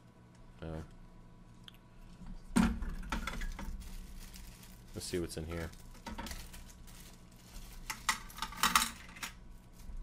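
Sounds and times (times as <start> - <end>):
plastic bag crinkling: 2.9 - 10.0.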